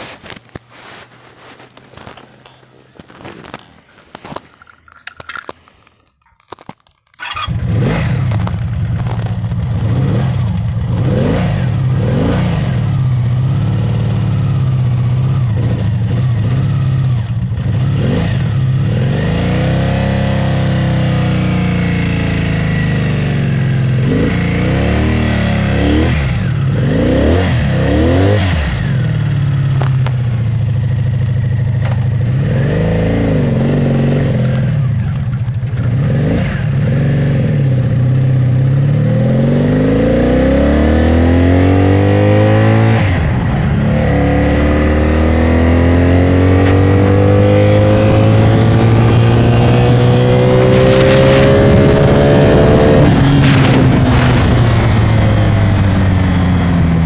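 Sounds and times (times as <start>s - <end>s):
motorcycle engine revving: 7.0s - 57.0s.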